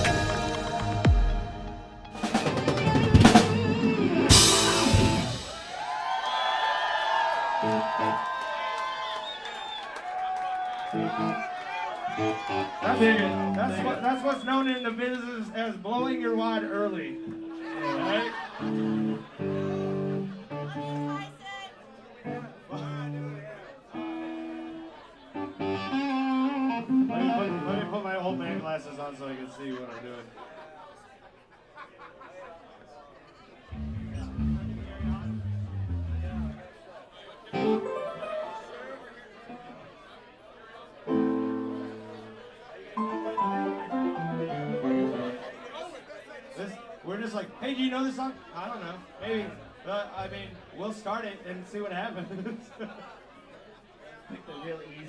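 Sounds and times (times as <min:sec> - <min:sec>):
live band playing chords: 0:00.0 - 0:06.0, 0:07.6 - 0:08.2, 0:10.9 - 0:11.5, 0:12.1 - 0:13.8, 0:16.0 - 0:21.3, 0:24.0 - 0:28.6, 0:33.7 - 0:36.6, 0:37.5 - 0:38.9, 0:41.1 - 0:42.4, 0:43.0 - 0:45.6
men talking: 0:12.6 - 0:19.3, 0:27.1 - 0:30.6, 0:45.2 - 0:53.0
people laughing: 0:17.1 - 0:20.5, 0:29.3 - 0:33.8, 0:52.0 - 0:54.5
electronic keyboard notes: 0:24.0 - 0:28.6, 0:33.7 - 0:36.6, 0:37.6 - 0:39.0, 0:41.1 - 0:42.4, 0:43.0 - 0:45.6.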